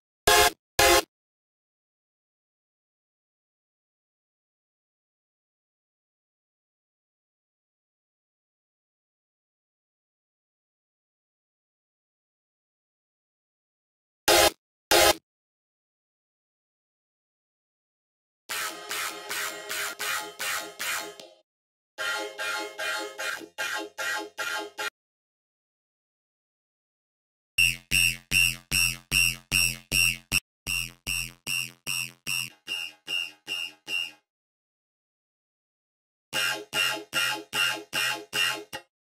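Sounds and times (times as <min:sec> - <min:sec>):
synthesizer stab pattern: 0:00.3 - 0:01.0, 0:14.3 - 0:15.2.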